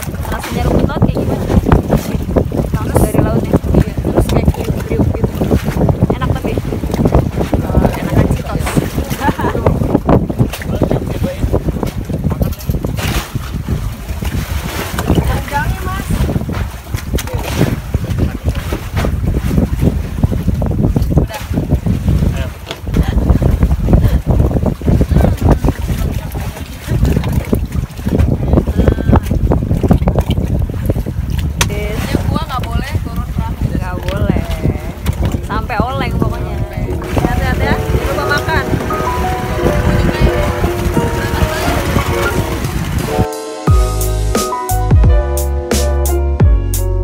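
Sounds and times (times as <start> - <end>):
wind buffeting microphone: 0.0 - 43.3.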